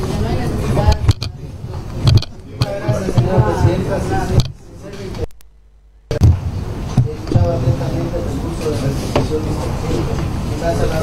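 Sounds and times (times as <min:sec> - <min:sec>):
faint background voices: 0:00.0 - 0:05.4
steady low rumble: 0:00.8 - 0:08.4
knock and low thumps: 0:06.1 - 0:07.8.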